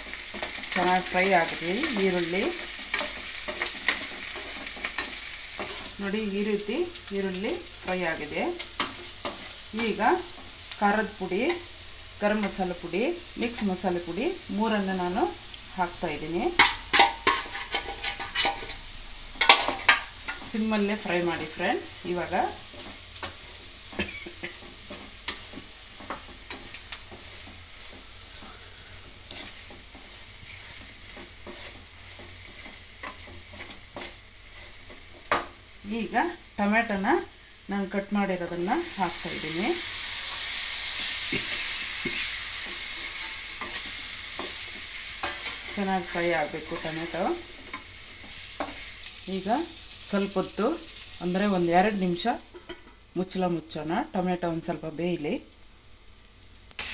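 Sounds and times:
spoon scraping a pan: 0:00.0 - 0:06.0, 0:16.5 - 0:21.2, 0:22.1 - 0:35.6, 0:38.5 - 0:49.2, 0:52.5 - 0:53.0
onions sizzling in a pan: 0:00.0 - 0:56.9
spoon clacking on pan: 0:16.6 - 0:18.8, 0:19.4 - 0:20.5, 0:34.9 - 0:35.6.

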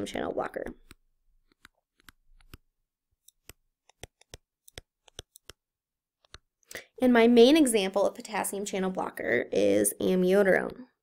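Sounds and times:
stylus tapping on tablet screen: 0:00.8 - 0:05.6, 0:06.2 - 0:06.5.

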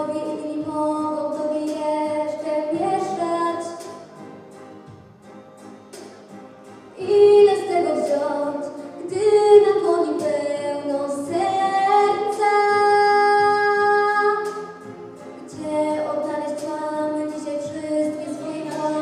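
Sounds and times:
girl singing into microphone: 0:00.0 - 0:04.0, 0:07.0 - 0:14.8, 0:15.4 - 0:19.0.

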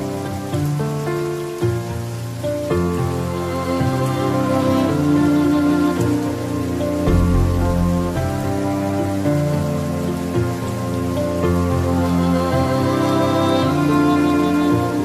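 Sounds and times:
slow calm instrumental music: 0:00.0 - 0:15.0
steady rain: 0:00.0 - 0:15.0.

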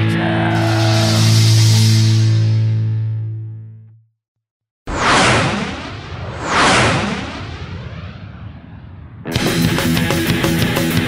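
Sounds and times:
noisy whooshing sound effect: 0:00.5 - 0:02.6, 0:04.9 - 0:09.9.

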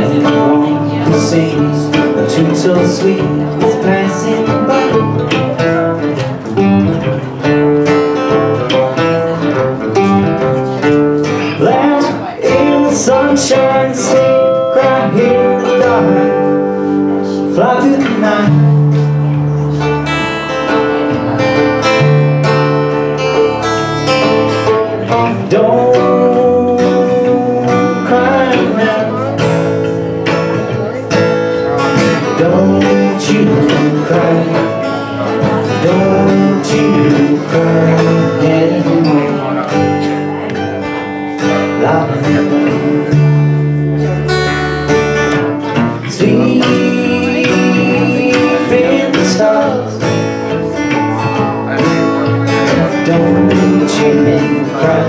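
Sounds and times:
bending lead melody: 0:00.0 - 0:55.0
plucked upright bass: 0:00.0 - 0:55.0
strummed acoustic guitar: 0:00.0 - 0:55.0.

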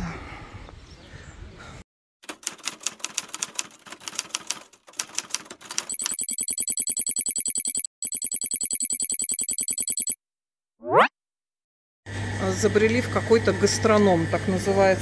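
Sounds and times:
fast even ticking: 0:05.0 - 0:10.2
high ringing tone: 0:05.9 - 0:10.2.

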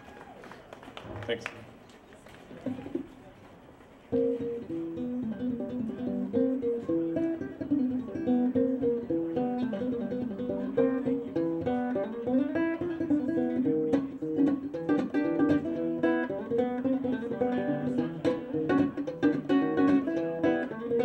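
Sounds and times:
ukulele plucked melody: 0:04.1 - 0:21.0.

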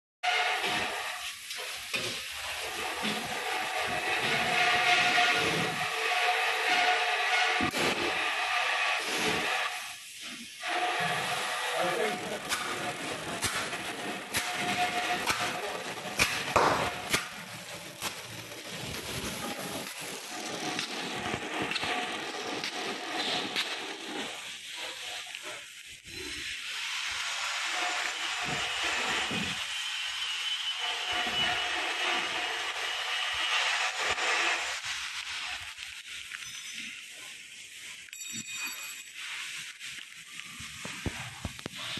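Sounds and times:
wrapping machine hum and hiss: 0:00.3 - 0:38.1, 0:38.9 - 0:41.9.

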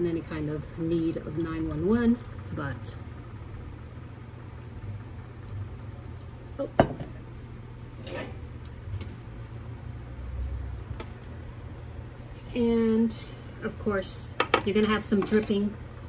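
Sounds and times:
steady low hum: 0:00.0 - 0:16.0
pot knocking on wooden table: 0:06.8 - 0:07.2.

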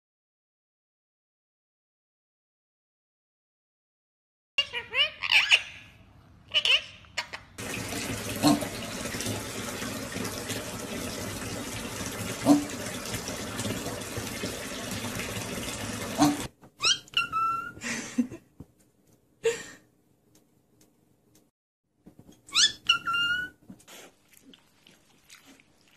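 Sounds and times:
tap running into bath: 0:07.6 - 0:16.5.

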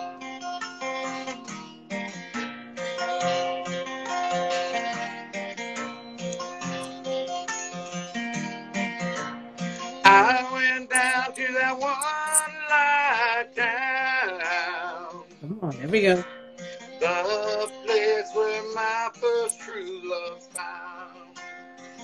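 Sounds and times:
acoustic guitar strumming: 0:10.1 - 0:11.4.

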